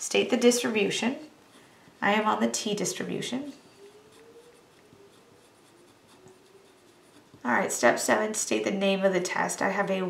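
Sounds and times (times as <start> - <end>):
marker writing on paper: 4.0 - 7.5.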